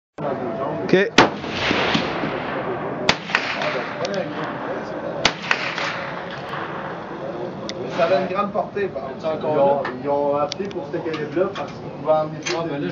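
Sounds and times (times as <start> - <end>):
murmur of voices: 0.2 - 12.9
faint distant gunshot cracks: 1.2 - 8.2
rifle shots: 1.2 - 8.3.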